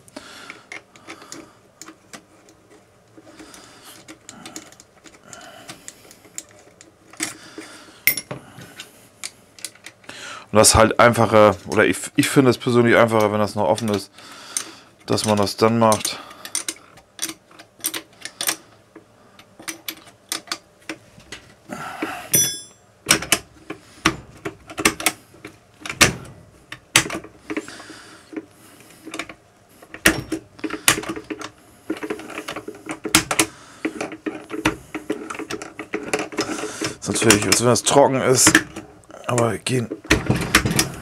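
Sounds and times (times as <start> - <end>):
brief metallic ring: 22.3 - 22.8
gearbox metal clicks and clacks: 29.1 - 40.9.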